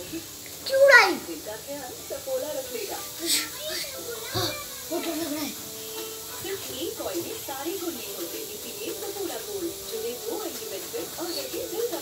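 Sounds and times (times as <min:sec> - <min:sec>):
children's voices chattering: 0:00.0 - 0:01.5, 0:02.5 - 0:07.9
short hiss: 0:02.8 - 0:09.1.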